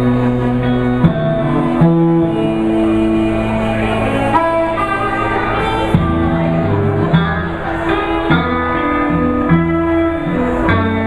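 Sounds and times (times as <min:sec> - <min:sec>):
instrumental blues band: 0:00.0 - 0:11.0.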